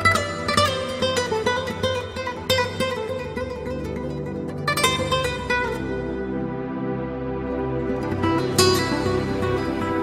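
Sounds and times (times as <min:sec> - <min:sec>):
plucked string instrument music: 0:00.0 - 0:10.0.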